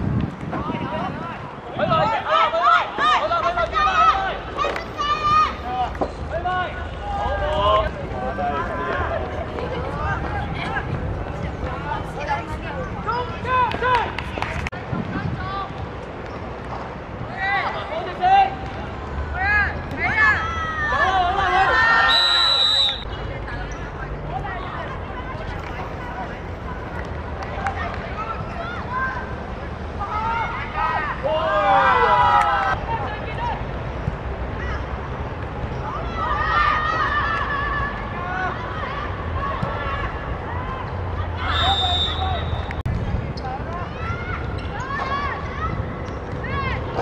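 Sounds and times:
outdoor background noise: 0:00.0 - 0:47.0
young voices calling and shouting: 0:00.5 - 0:15.9, 0:17.1 - 0:42.6, 0:43.2 - 0:47.0.

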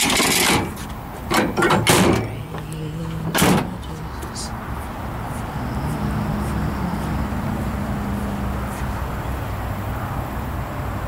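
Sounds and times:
tailgate latching bang: 0:00.0 - 0:02.4, 0:03.2 - 0:03.8
tailgate knocks and clatter: 0:00.0 - 0:02.6.

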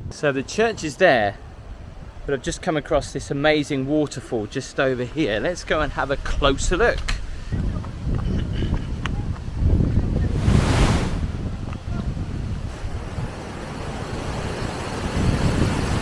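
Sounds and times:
wind buffeting microphone: 0:05.3 - 0:16.0.

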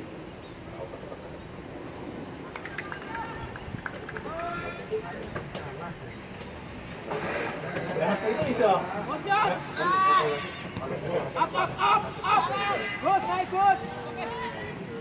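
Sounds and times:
voices calling and shouting: 0:00.6 - 0:15.0.

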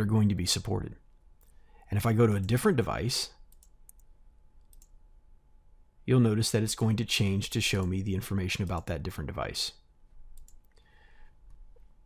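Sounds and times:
quiet room hum: 0:00.0 - 0:12.0
computer mouse clicks: 0:03.5 - 0:05.0, 0:10.3 - 0:10.9.

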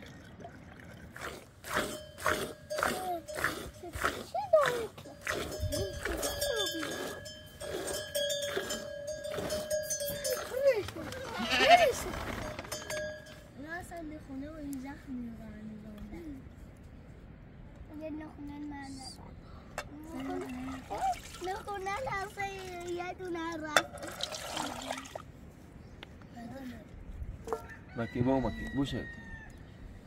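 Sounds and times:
sheep bleating: 0:11.2 - 0:12.0.

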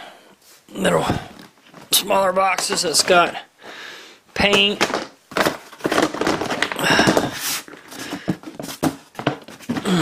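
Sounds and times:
plastic box scraping and clicking: 0:04.5 - 0:09.8.

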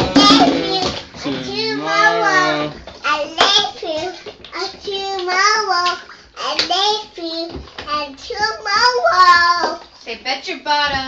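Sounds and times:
child singing: 0:00.0 - 0:09.8.

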